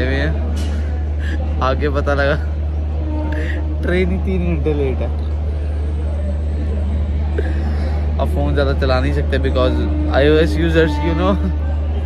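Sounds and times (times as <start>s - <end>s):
train rumbling at platform: 0.0s - 12.0s.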